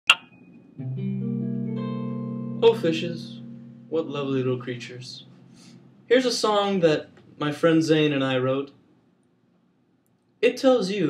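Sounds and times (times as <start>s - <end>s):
electric guitar chord picked: 0.8s - 7.4s.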